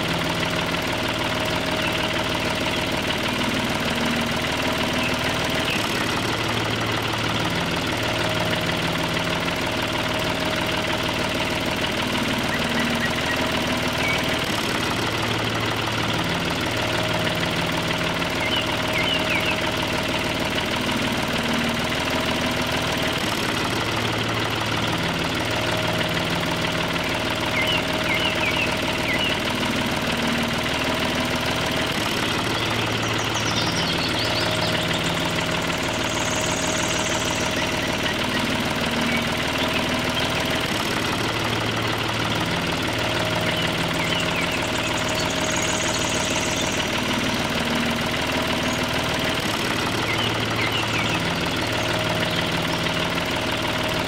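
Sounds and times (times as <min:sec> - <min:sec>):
engine running: 0:00.0 - 0:54.0.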